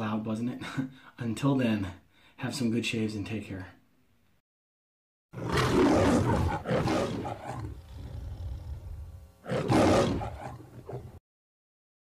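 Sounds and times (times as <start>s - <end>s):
lion growl: 5.4s - 11.2s
lion roaring: 5.4s - 11.2s.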